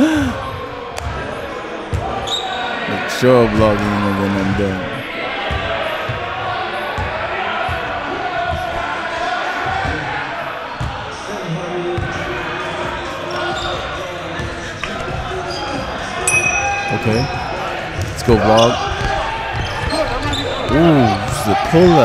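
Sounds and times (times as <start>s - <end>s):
players chattering: 0.0s - 22.0s
basketball bouncing on court: 7.0s - 8.8s.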